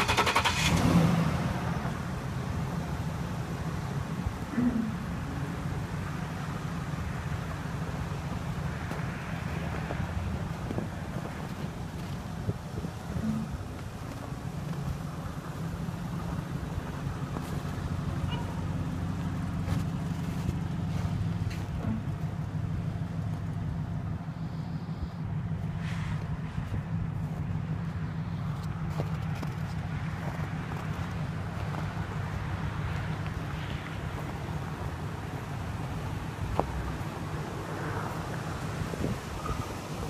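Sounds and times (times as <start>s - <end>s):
van engine idling: 0.0s - 40.0s
footsteps crunching in snow: 8.8s - 12.6s, 16.1s - 17.9s, 18.6s - 21.8s, 25.8s - 34.4s.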